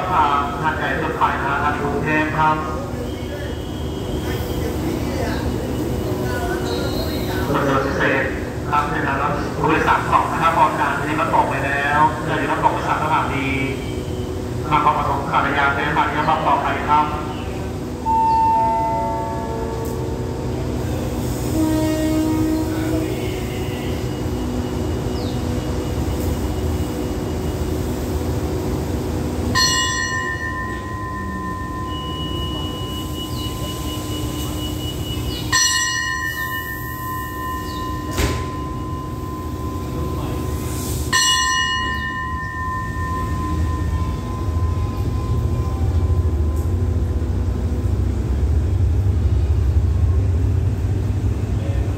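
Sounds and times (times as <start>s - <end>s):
diesel train engine rumble: 0.0s - 51.9s
bell ringing: 29.6s - 46.7s.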